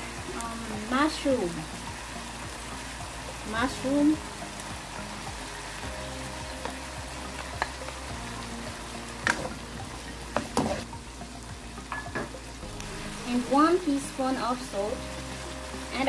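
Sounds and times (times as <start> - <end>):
chicken and mushrooms sizzling: 0.0 - 16.0.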